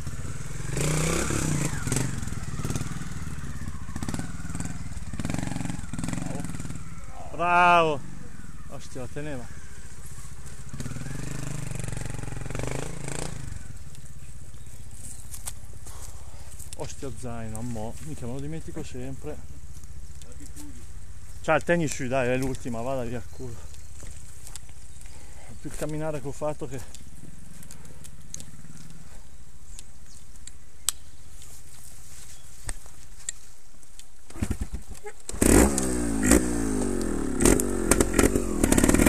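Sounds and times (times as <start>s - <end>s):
motorcycle engine revving: 0.0s - 29.4s, 34.3s - 39.0s
sharp clicks: 29.7s - 31.5s, 32.6s - 39.0s.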